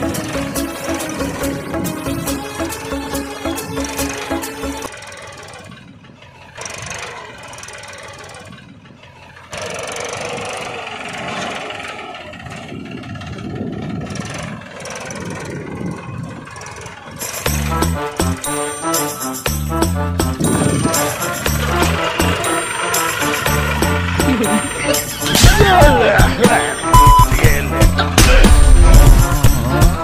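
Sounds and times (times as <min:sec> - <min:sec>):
background music: 0:00.0 - 0:04.9, 0:17.2 - 0:30.0
small tractor engine running: 0:00.0 - 0:30.0.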